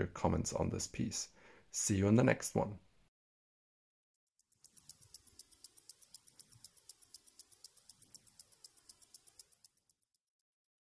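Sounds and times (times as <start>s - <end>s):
mechanical watch ticking: 4.3s - 10.5s.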